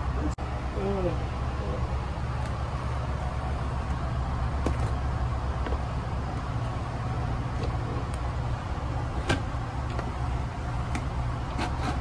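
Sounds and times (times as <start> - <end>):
train car low rumble: 0.0 - 11.6.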